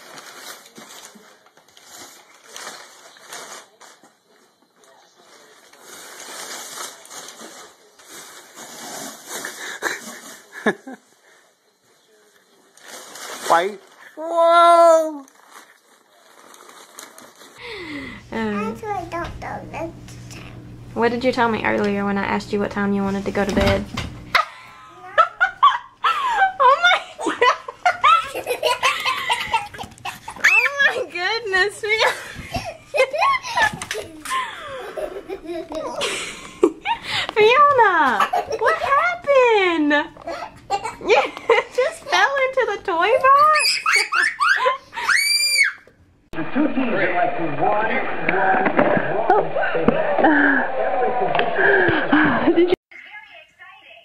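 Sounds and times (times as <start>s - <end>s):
hearty laughter: 24.4s - 30.4s, 32.0s - 37.2s, 46.4s - 52.8s
muffled voices: 46.4s - 52.6s.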